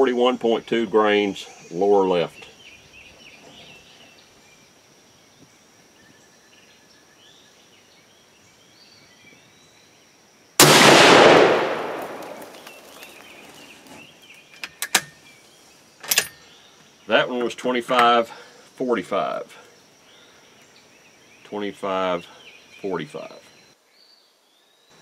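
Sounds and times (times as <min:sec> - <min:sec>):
rifle shot with echo: 0:10.6 - 0:12.9.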